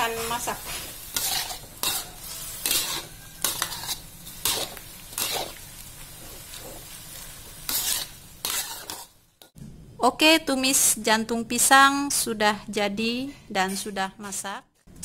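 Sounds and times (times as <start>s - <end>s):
spatula scraping a metal wok: 0.0s - 9.5s
food sizzling in a wok: 0.0s - 9.6s.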